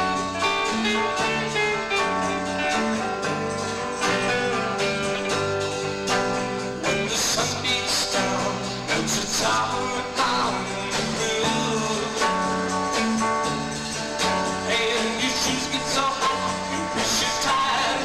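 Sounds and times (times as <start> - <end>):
bass guitar: 0.0 - 18.0
drum kit on steady beat: 0.0 - 18.0
electric guitars: 0.0 - 18.0.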